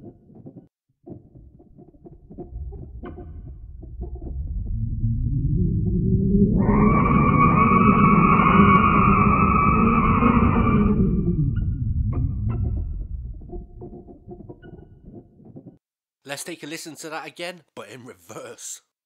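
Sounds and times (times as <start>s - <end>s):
low droning rumble: 1.4s - 14.7s
high sustained tones: 2.3s - 13.9s.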